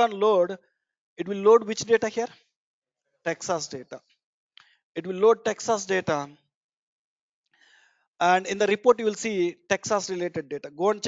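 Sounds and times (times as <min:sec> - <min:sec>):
person speaking: 0:00.0 - 0:00.6, 0:01.2 - 0:02.4, 0:03.3 - 0:04.0, 0:05.0 - 0:06.4
faint breath drawn in: 0:07.5 - 0:08.1.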